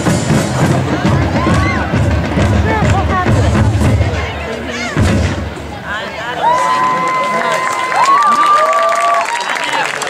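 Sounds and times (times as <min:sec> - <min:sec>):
marching bass drums booming: 0:00.0 - 0:05.9
crowd shouting and cheering: 0:00.0 - 0:10.0.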